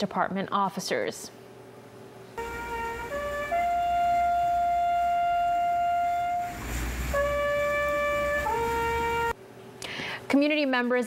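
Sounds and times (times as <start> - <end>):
brass horn playing long notes: 2.4 - 9.4.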